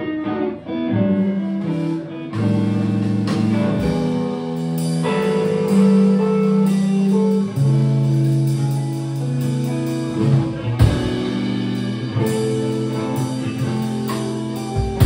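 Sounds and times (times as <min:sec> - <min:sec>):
bass guitar: 0:00.0 - 0:15.0
electric guitar sustained notes: 0:00.0 - 0:15.0
drum kit played with sticks: 0:01.5 - 0:15.0.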